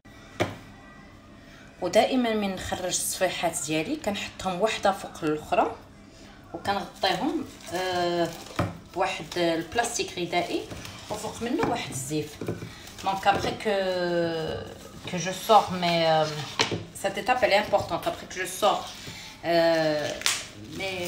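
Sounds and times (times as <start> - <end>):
woman speaking: 1.8 - 5.9, 6.5 - 21.0.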